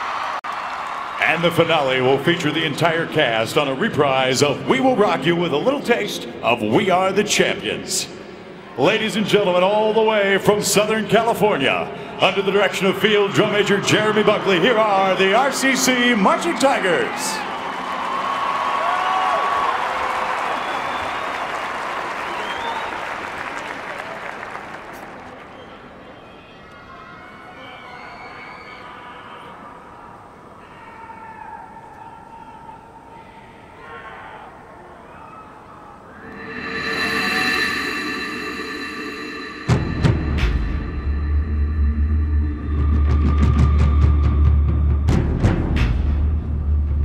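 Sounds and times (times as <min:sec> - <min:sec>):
crowd applauding and cheering: 0:00.0 - 0:02.5, 0:13.1 - 0:26.0
marching band held chord: 0:36.2 - 0:45.2
low drum and timpani hits: 0:39.4 - 0:47.0.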